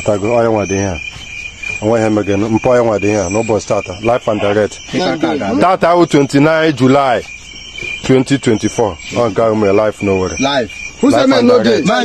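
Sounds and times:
people talking: 0:00.0 - 0:01.1, 0:01.8 - 0:07.3, 0:08.0 - 0:12.0
crickets trilling: 0:00.0 - 0:12.0.

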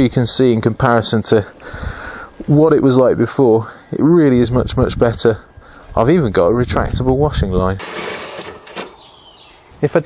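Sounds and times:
cord whirring into reel: 0:07.8 - 0:09.1.

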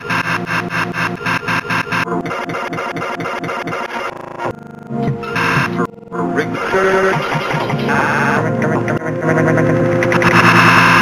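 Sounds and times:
stuttering looped sound snippet: 0:00.0 - 0:11.0.

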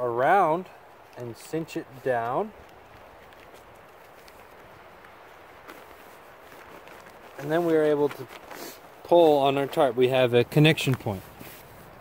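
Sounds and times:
outdoor background hiss: 0:00.0 - 0:12.0
light tick of cord on tarp: 0:01.0 - 0:09.8, 0:10.7 - 0:12.0.

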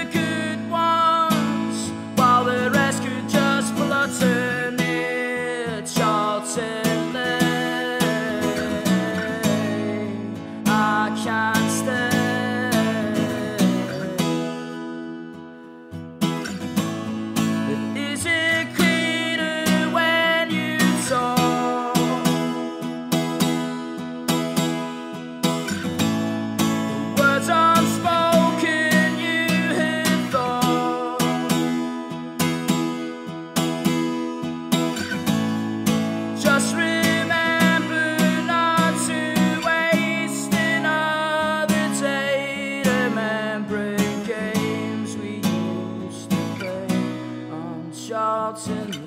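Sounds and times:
acoustic guitar strumming: 0:00.0 - 0:49.0.

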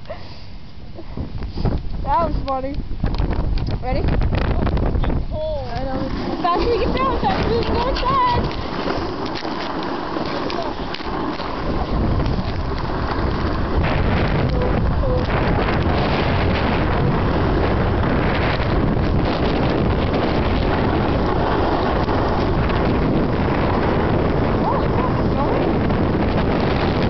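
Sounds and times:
wind rushing over microphone: 0:00.9 - 0:27.0
snowboard sliding on snow: 0:05.9 - 0:27.0.

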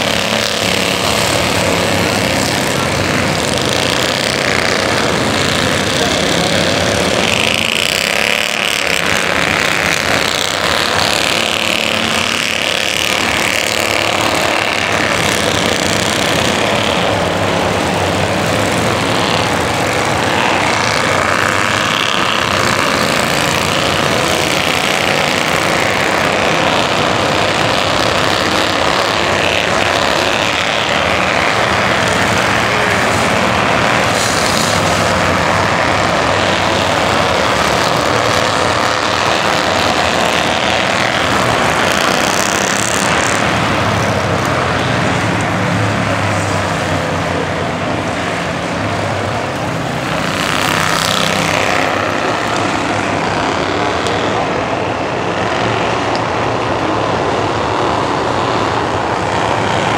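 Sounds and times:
race car engines lapping: 0:00.0 - 0:59.9.

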